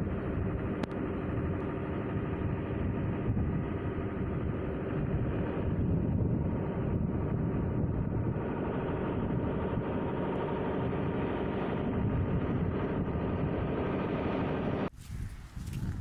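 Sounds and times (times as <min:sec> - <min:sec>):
strong wind buffeting microphone: 0:00.0 - 0:16.0.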